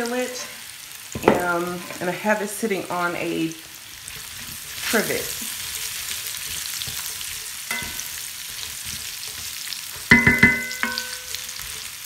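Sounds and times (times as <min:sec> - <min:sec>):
potatoes sizzling in a skillet: 0:00.0 - 0:12.0
ringing metal clanks: 0:10.1 - 0:11.4.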